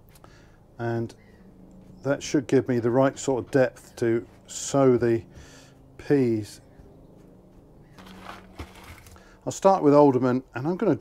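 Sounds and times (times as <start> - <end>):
low steady hum: 0.0 - 11.0
dried peas handled: 8.0 - 9.2.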